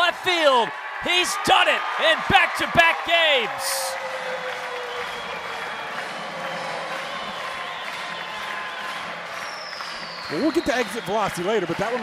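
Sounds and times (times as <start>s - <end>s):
crowd cheering and applauding: 0.0s - 12.0s.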